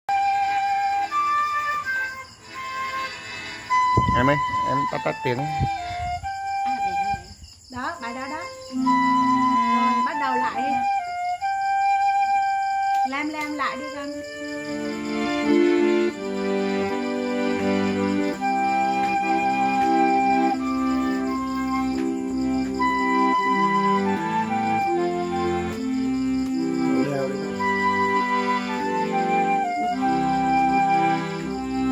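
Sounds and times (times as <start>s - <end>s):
bamboo flute playing slow melody: 0.1s - 7.4s, 8.7s - 16.3s, 17.6s - 31.9s.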